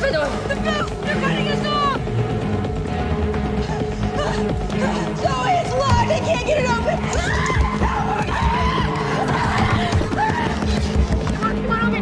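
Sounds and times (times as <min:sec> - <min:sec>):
tense orchestral score: 0:00.0 - 0:12.0
panicked shouting: 0:04.2 - 0:11.0.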